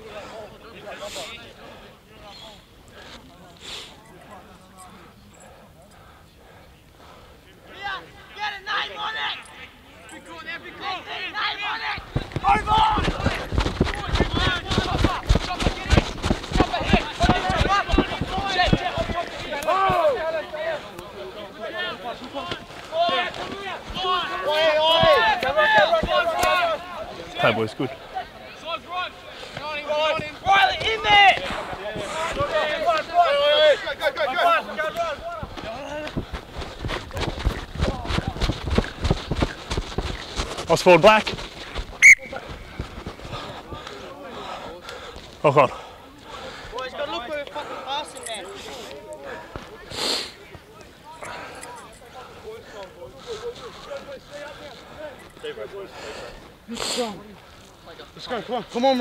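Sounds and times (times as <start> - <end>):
players shouting: 7.7 - 36.1
rough crackling noise: 11.9 - 20.3, 34.8 - 44.0.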